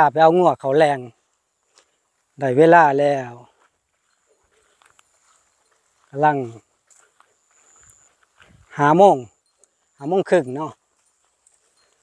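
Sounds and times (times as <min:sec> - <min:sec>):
man speaking: 0:00.0 - 0:01.2, 0:02.4 - 0:03.6, 0:06.1 - 0:06.7, 0:08.7 - 0:09.4, 0:10.0 - 0:10.8
faint steady high tone: 0:00.0 - 0:12.0.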